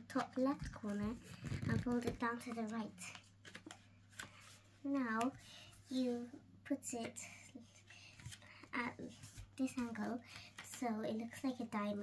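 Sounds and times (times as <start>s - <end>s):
paper crinkles and taps: 0.1s - 4.4s.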